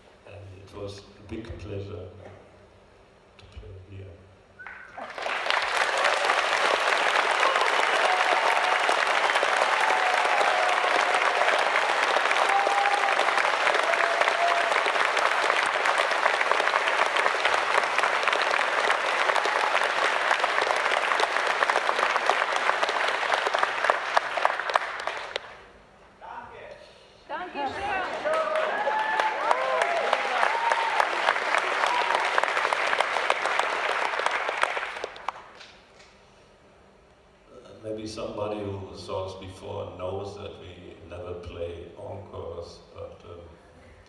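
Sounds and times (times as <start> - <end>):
audience applauding: 4.9 - 25.6, 27.6 - 35.7.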